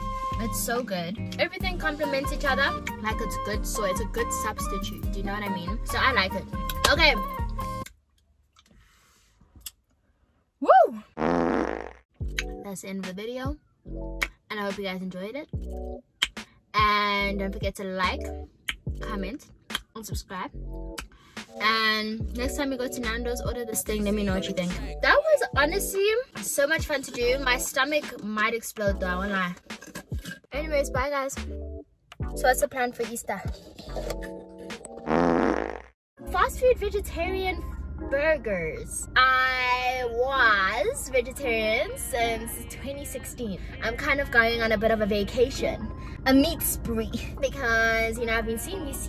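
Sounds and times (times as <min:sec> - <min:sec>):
background music: 0:00.0 - 0:07.9, 0:12.2 - 0:35.6
loud fart-like rasp: 0:11.2 - 0:12.1, 0:35.0 - 0:36.0.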